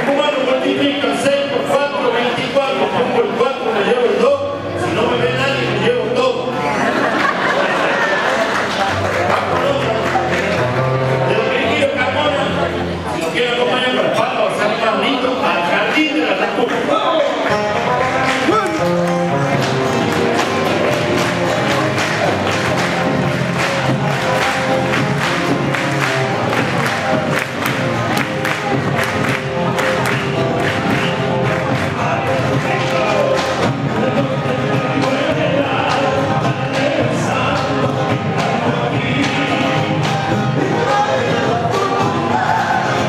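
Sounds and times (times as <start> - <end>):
folk group playing instruments: 17.5 - 37.0
voices singing: 18.2 - 43.0.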